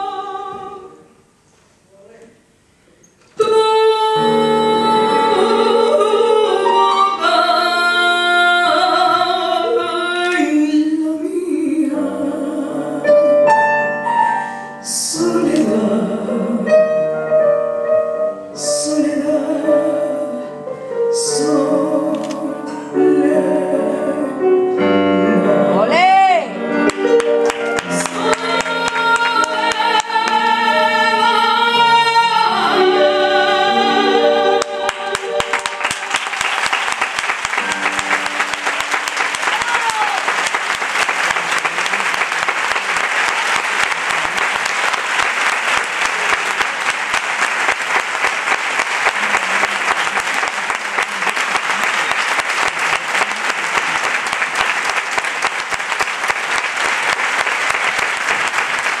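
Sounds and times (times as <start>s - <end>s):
woman singing with orchestra: 0.0s - 1.1s, 3.4s - 13.5s, 14.8s - 17.2s, 18.6s - 26.7s, 27.8s - 36.3s
audience applauding: 26.8s - 30.4s, 34.6s - 59.0s.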